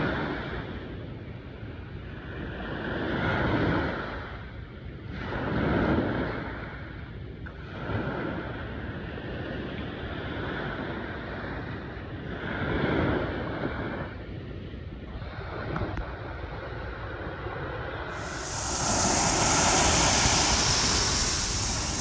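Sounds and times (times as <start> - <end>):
small ocean waves breaking: 18.1 - 22.0.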